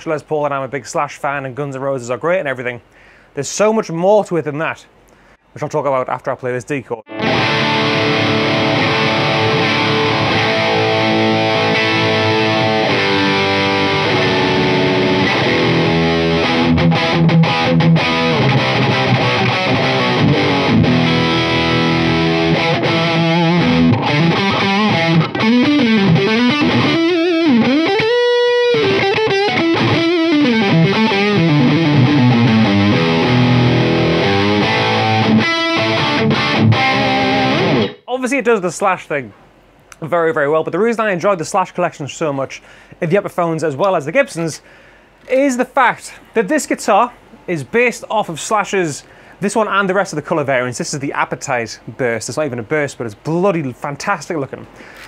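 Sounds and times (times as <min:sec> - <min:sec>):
distorted electric guitar: 0:07.1 - 0:38.1.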